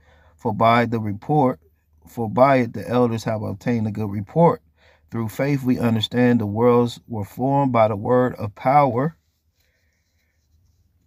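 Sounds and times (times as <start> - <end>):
man's voice: 5.2 - 9.2.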